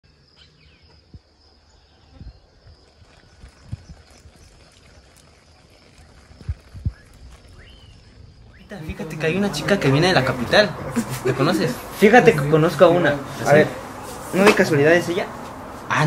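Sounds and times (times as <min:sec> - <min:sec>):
faint bird chirps: 0:00.1 - 0:04.7, 0:06.8 - 0:08.7.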